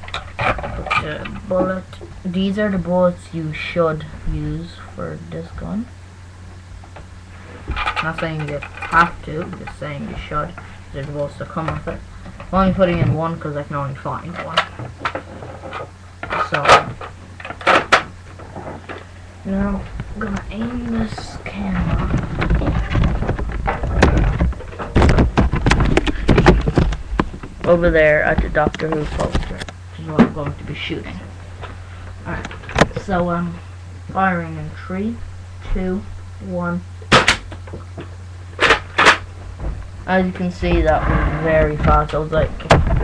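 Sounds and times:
plastic body rattling: 19.9 - 29.6, 40.6 - 43.0.

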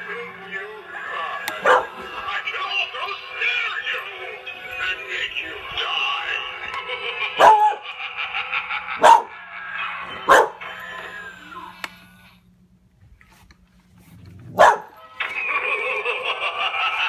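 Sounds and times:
dog barking: 1.6 - 1.9, 7.4 - 7.8, 9.0 - 9.3, 10.3 - 10.6, 14.5 - 15.0.

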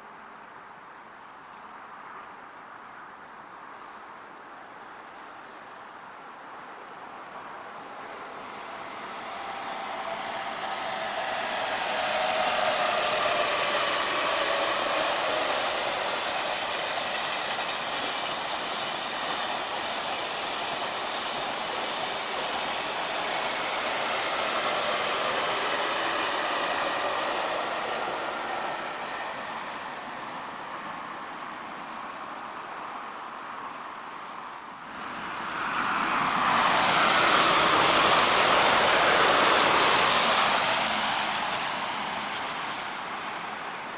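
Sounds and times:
train passing rushing noise: 6.0 - 43.9
sudden loud rush of noise: 7.3 - 31.2, 34.8 - 43.9.

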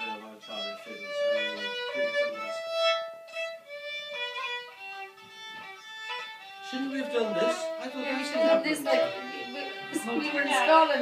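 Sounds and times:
fiddle slow melody: 0.0 - 11.0.

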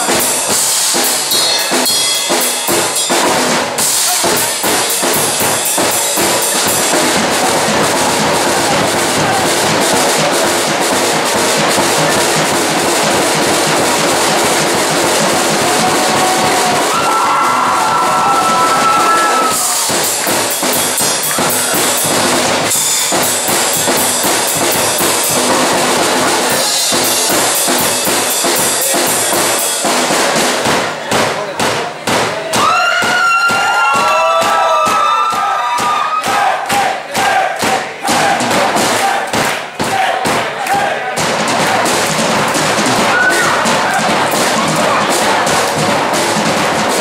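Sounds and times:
crowd yelling and cheering: 0.0 - 47.0
fast drumming with cymbals: 0.0 - 47.0.

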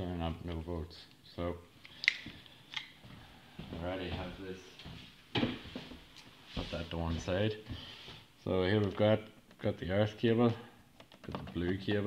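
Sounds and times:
man speaking: 0.0 - 1.7, 3.7 - 4.9, 6.6 - 7.7, 8.4 - 10.7, 11.4 - 12.0.

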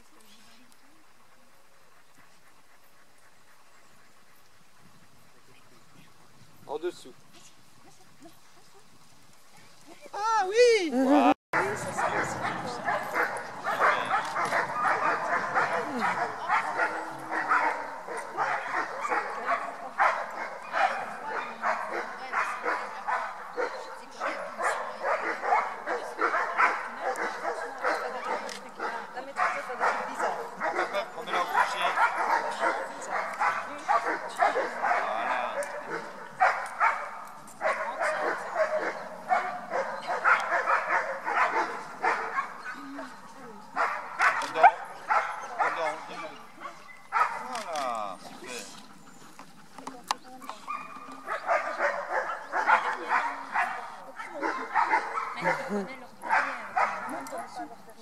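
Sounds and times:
dogs barking and whining: 11.6 - 47.7, 50.3 - 57.8.

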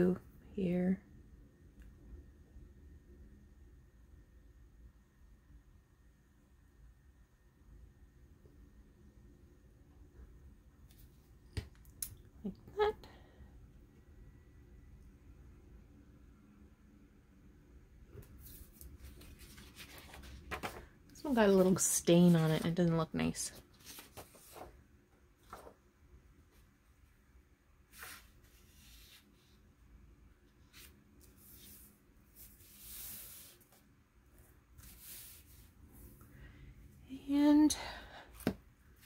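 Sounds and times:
paper rustling: 18.4 - 20.9, 21.5 - 24.8, 25.4 - 25.8.

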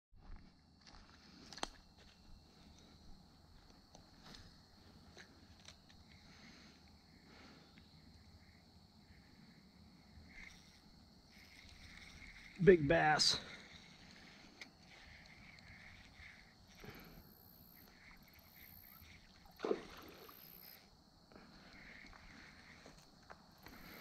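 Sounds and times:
faint footsteps in grass: 0.2 - 5.7.

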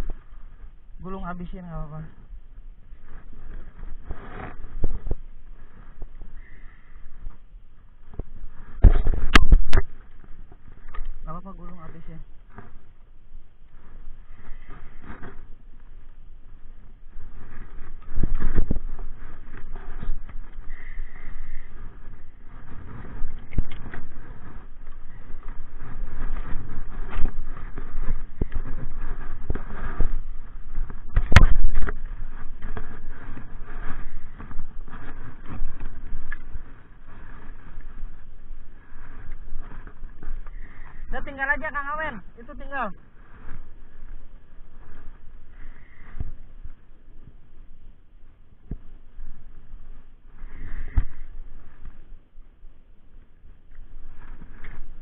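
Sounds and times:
rumbling on microphone: 0.0 - 55.0.

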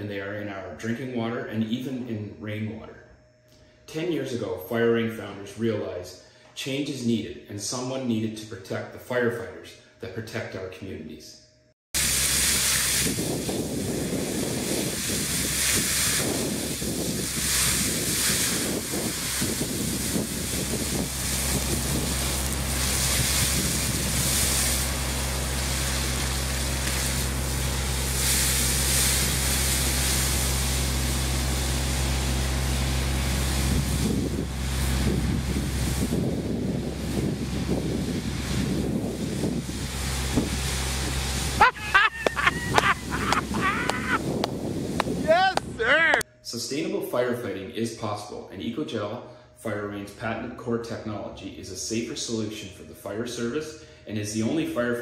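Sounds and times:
fire hose spray rushing: 12.0 - 45.6
wind buffeting microphone: 12.5 - 24.8, 33.6 - 41.6, 42.2 - 46.2
low engine hum: 17.2 - 45.8.

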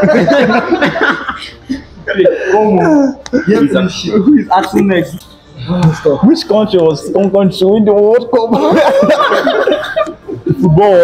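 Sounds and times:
young men laughing: 0.0 - 4.8, 8.4 - 11.0
man speaking: 2.1 - 8.8, 10.5 - 11.0.

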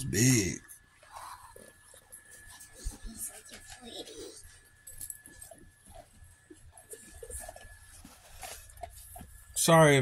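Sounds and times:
dogs moving and nosing around: 1.1 - 9.6.

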